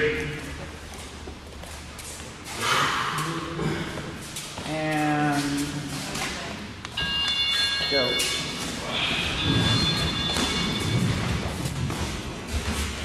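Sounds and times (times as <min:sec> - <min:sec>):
man calling out in a hall: 0:00.0 - 0:00.6.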